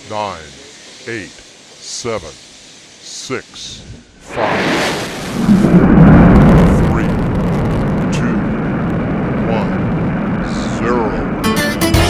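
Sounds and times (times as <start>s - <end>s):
rocket engines roaring: 0.0s - 12.0s.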